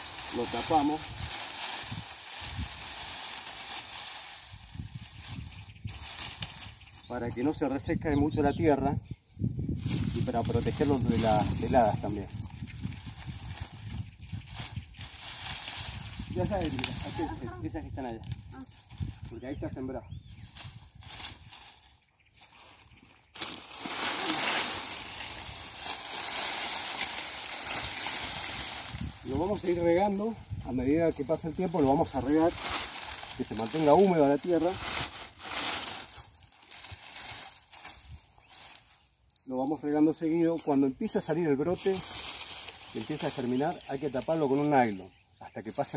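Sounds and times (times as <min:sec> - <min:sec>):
dry plant stalks rustling: 0:00.0 - 0:08.8, 0:09.4 - 0:45.9.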